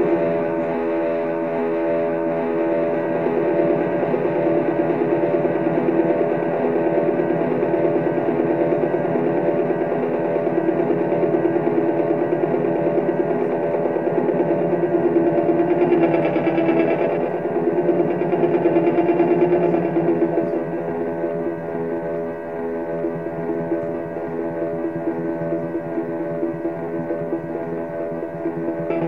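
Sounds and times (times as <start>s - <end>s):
distorted electric guitar drone: 0.0s - 29.0s.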